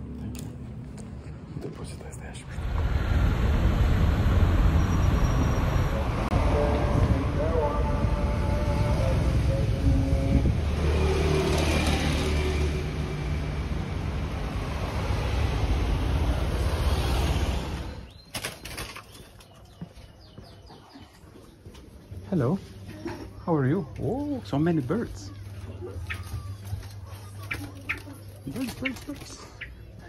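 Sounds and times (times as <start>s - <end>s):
street traffic engine hum: 0.0s - 30.0s
bird wings flapping: 18.3s - 19.4s.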